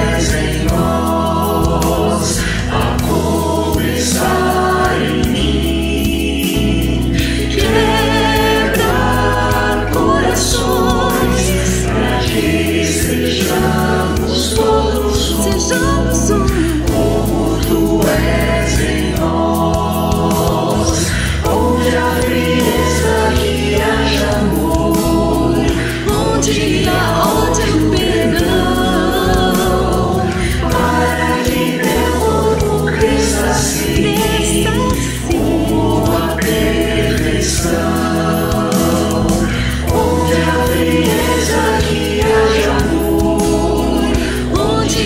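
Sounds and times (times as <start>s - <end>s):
bass guitar: 0.0s - 45.0s
drums: 0.0s - 45.0s
keyboard: 0.0s - 45.0s
mixed choir singing: 0.0s - 45.0s.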